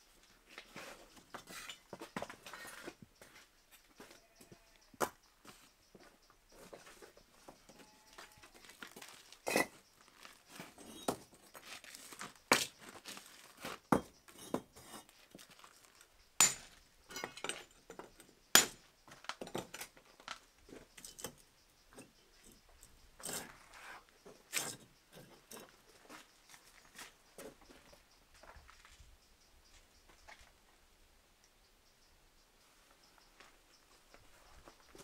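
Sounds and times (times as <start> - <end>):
bricks knocking and scraping: 9.0 - 9.8, 10.5 - 13.0, 13.6 - 15.6, 16.4 - 20.0.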